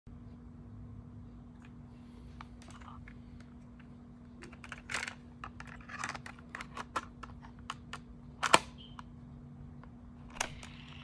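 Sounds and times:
faint steady hum: 0.1s - 11.0s
plastic clicks and rattles: 4.4s - 8.6s.

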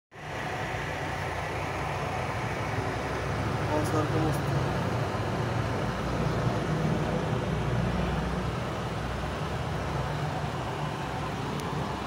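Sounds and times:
truck diesel engine idling: 0.2s - 12.0s.

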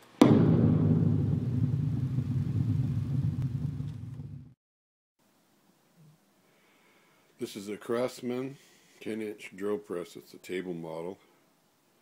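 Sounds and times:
deep rumbling boom: 0.0s - 4.6s.

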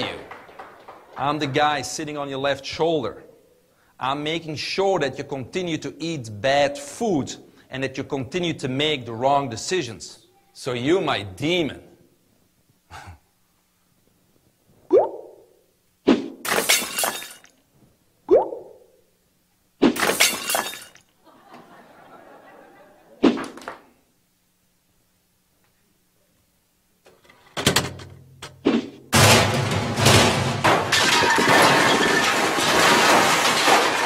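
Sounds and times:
glass shattering: 16.4s - 17.6s, 19.9s - 21.1s, 29.2s - 34.0s.

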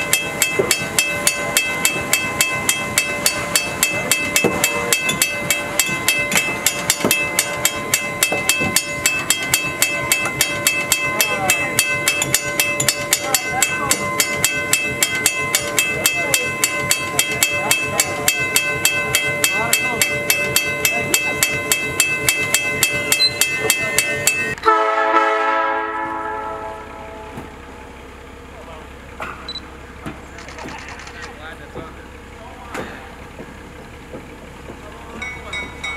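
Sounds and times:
crossing warning bell ringing: 0.0s - 35.9s
locomotive horn: 24.6s - 27.5s.

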